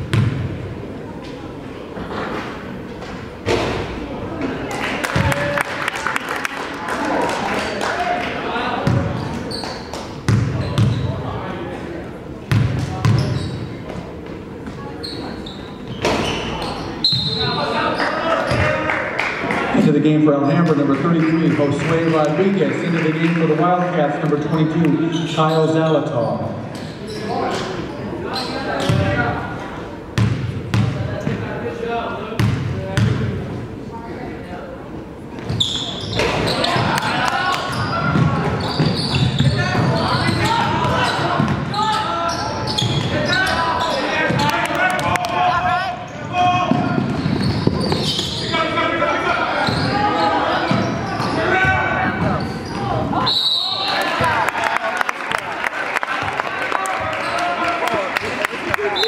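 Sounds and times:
basketball bouncing: 0:00.0 - 0:00.5, 0:08.8 - 0:09.2, 0:10.3 - 0:11.0, 0:12.5 - 0:13.4, 0:28.8 - 0:29.2, 0:30.2 - 0:31.4, 0:32.4 - 0:33.3, 0:37.7 - 0:41.7
whistle blast: 0:53.2 - 0:54.0.

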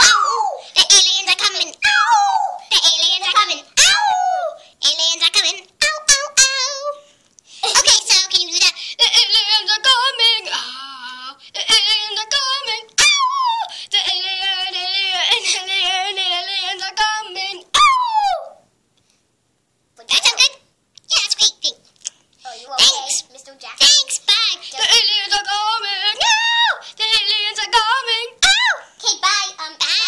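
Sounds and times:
child singing: 0:00.0 - 0:18.6, 0:22.5 - 0:30.0.

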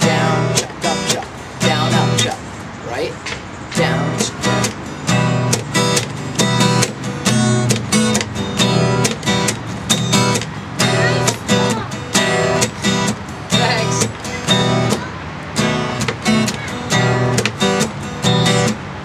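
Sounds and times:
palm-muted guitar chucks: 0:00.0 - 0:02.4, 0:03.7 - 0:18.8
acoustic guitar strumming: 0:00.0 - 0:19.0.

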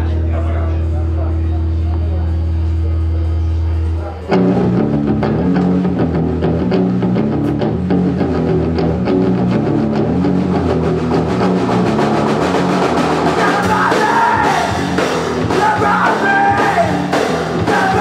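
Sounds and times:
electric guitar riff: 0:01.0 - 0:18.0
drum kit: 0:04.3 - 0:18.0.

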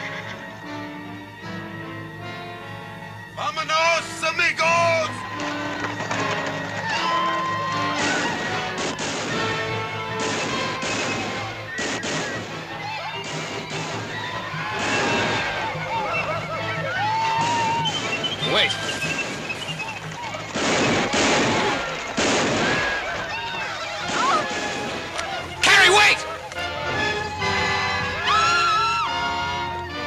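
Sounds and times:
dramatic film music: 0:00.0 - 0:30.0
men yelling: 0:03.6 - 0:06.0, 0:14.1 - 0:19.2, 0:19.8 - 0:29.2
gunshots: 0:07.9 - 0:15.8, 0:17.3 - 0:26.1.

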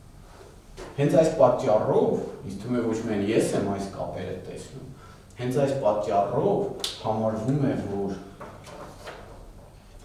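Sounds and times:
faint rustling and shuffling: 0:07.7 - 0:10.0.

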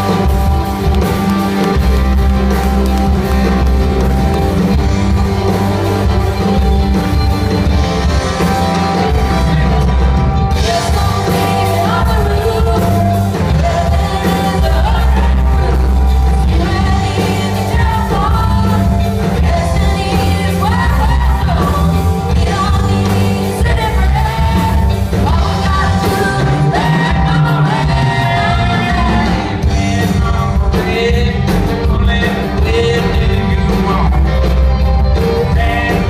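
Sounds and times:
live rock band playing: 0:00.0 - 0:36.0
two people singing: 0:09.0 - 0:34.6, 0:35.2 - 0:36.0.

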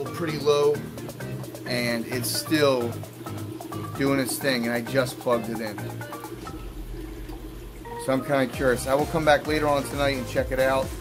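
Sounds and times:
low pump hum: 0:00.0 - 0:11.0
water trickling and bubbling: 0:00.3 - 0:09.8.

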